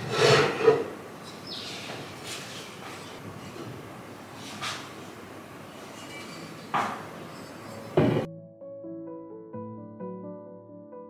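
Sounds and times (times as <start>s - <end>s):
ornaments knocking on wooden shelf: 8.0s - 8.3s.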